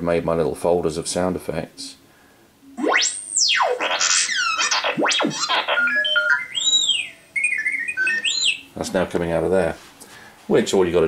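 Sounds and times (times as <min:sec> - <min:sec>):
electronic whistles sweeping: 0:02.7 - 0:08.8
robot chirps and warbling beeps: 0:02.7 - 0:09.1.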